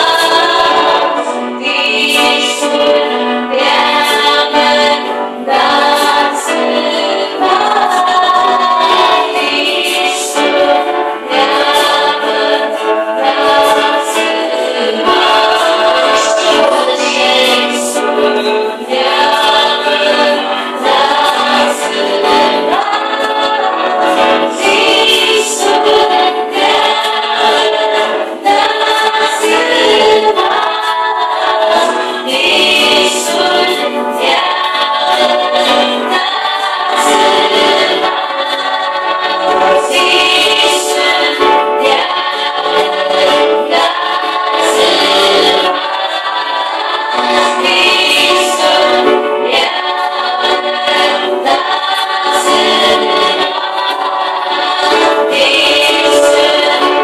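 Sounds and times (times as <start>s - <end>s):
group singing worship song: 0.0s - 57.0s.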